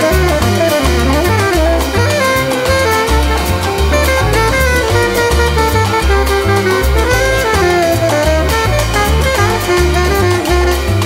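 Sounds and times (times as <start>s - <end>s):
jazz music: 0.0s - 11.0s.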